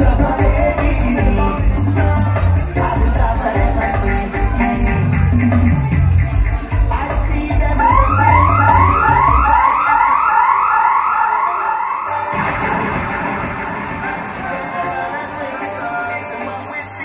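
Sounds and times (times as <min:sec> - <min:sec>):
dub sound-system music: 0:00.0 - 0:17.0
siren-like sweeping effect: 0:07.8 - 0:15.2.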